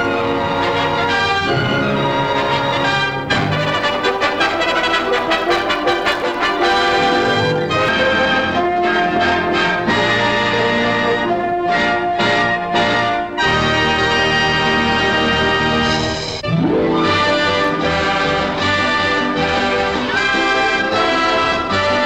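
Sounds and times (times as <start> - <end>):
orchestral film music: 0.0 - 22.0.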